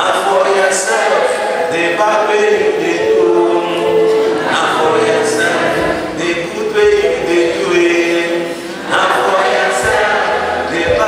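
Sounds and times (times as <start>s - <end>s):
congregation singing: 0.0s - 11.0s.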